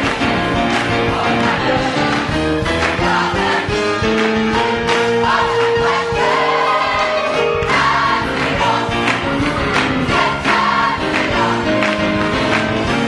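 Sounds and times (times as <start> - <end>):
church choir singing gospel: 0.0 - 13.0.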